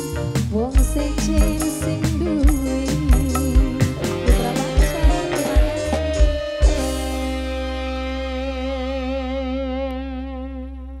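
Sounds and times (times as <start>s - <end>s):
held instrumental note with vibrato: 0.0s - 11.0s.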